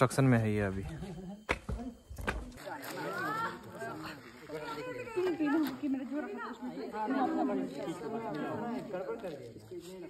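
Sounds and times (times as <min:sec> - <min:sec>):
people talking and chattering: 0:00.0 - 0:10.0.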